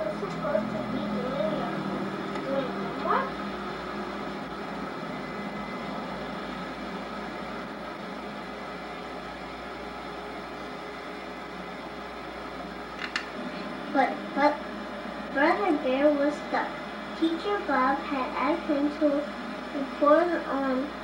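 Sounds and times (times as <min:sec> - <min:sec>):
steady hiss with low hum: 0:00.0 - 0:21.0.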